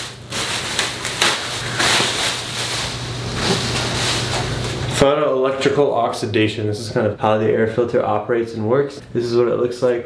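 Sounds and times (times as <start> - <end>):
plastic wrapping crinkling: 0.0 - 5.0.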